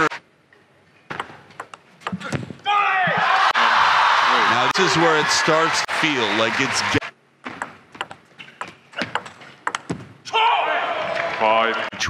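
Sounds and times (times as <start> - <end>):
table tennis ball clicks: 1.1 - 2.2, 7.6 - 10.0.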